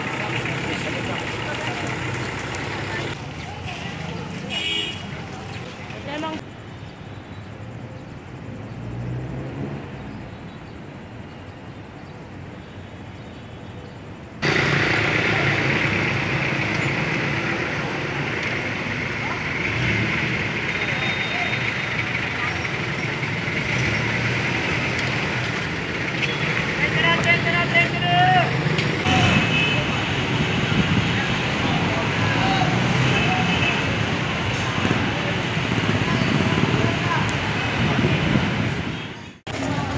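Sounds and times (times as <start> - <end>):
traffic and vehicle engines: 0.0 - 39.9
crowd chatter: 20.3 - 23.9, 26.6 - 39.9.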